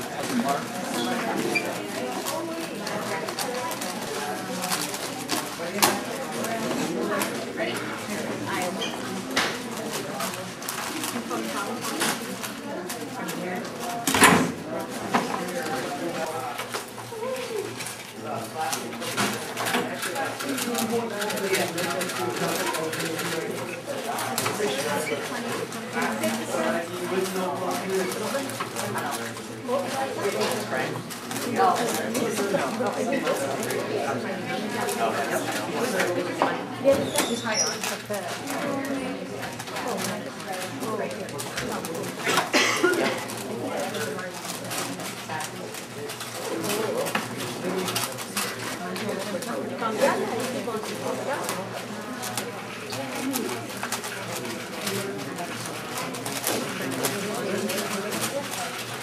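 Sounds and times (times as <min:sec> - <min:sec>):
chatter of many voices: 0:00.0 - 0:59.0
people talking: 0:00.0 - 0:59.0.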